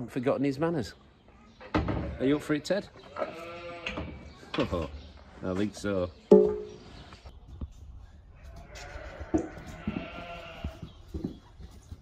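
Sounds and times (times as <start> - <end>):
sheep bleating: 3.1 - 4.0, 8.5 - 10.8.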